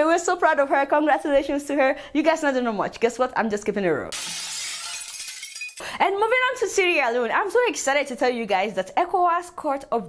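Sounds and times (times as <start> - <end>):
glass shattering: 4.1 - 5.8.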